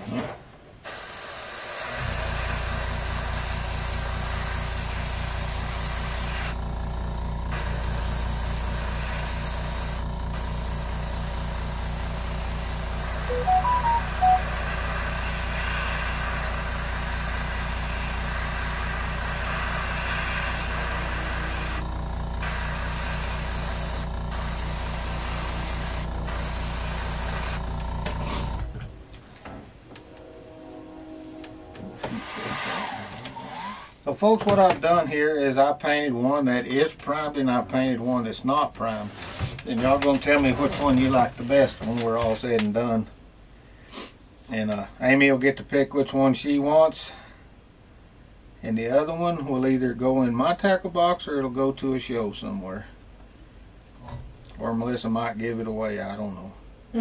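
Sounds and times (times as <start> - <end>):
airbrush spraying hiss: 0.8 - 6.6, 7.5 - 21.8, 22.4 - 27.6
air compressor humming: 0.8 - 30.0
short high blips: 13.3 - 14.7.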